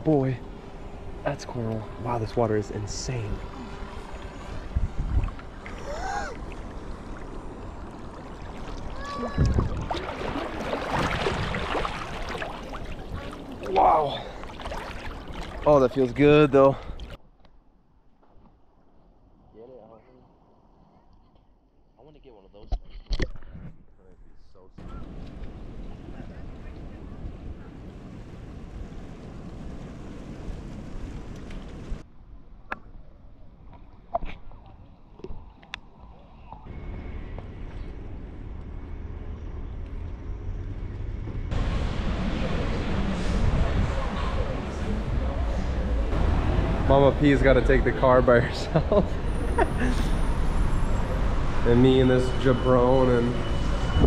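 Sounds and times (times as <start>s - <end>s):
water sloshing and splashing: 2.8s - 17.2s
wind on microphone: 4.1s - 5.7s, 9.2s - 13.5s, 42.3s - 45.8s.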